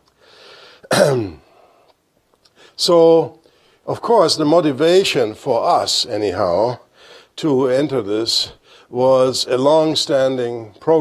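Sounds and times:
man breathing in: 0.1s - 0.9s, 6.9s - 7.4s, 8.6s - 8.9s
man clearing his throat: 0.8s - 1.6s.

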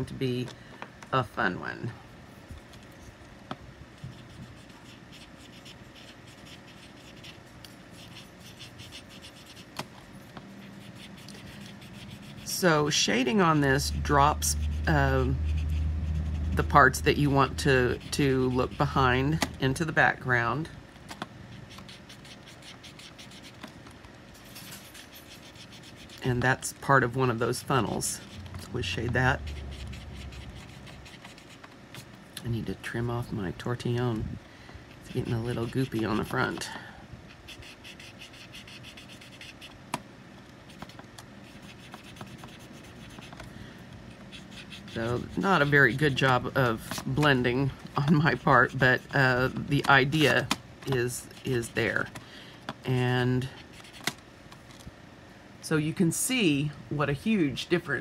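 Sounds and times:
soft scratching on paper: 4.0s - 19.3s, 21.5s - 23.6s, 24.6s - 26.4s, 27.9s - 32.1s, 37.3s - 39.8s, 40.6s - 43.4s, 44.1s - 47.4s.

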